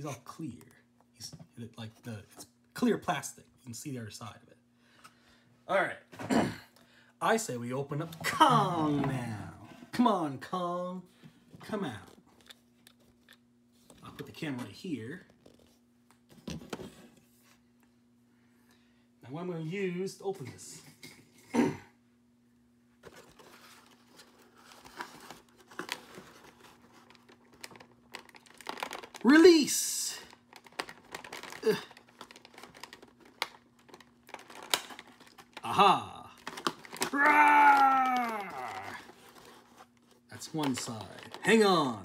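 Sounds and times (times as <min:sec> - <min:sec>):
faint steady hum: 0:00.0 - 0:42.0
handling clicks and crinkles: 0:11.9 - 0:16.8, 0:23.0 - 0:42.0.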